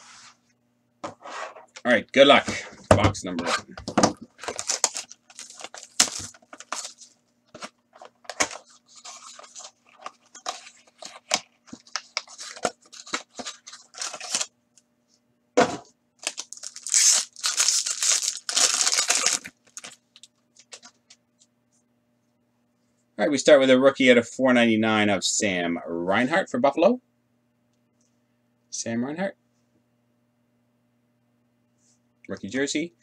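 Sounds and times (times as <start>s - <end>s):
cardboard ripping and rustling: 4.0s - 14.5s, 16.2s - 20.0s
foil wrapper tearing: 4.4s - 7.1s, 8.3s - 14.5s, 16.2s - 20.3s.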